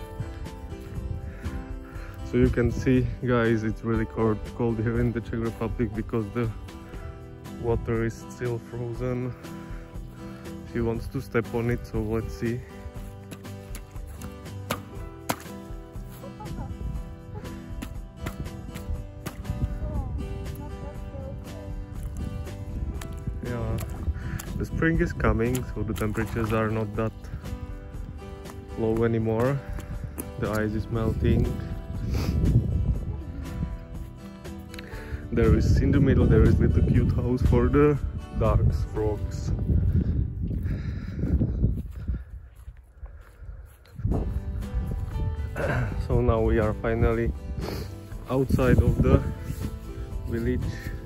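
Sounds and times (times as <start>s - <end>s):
footsteps on grass: 0.0s - 2.8s, 8.5s - 34.8s, 39.5s - 51.0s
low wind rumble: 0.0s - 3.4s, 16.4s - 26.0s, 29.6s - 51.0s
boot cracking ice: 13.2s - 15.7s.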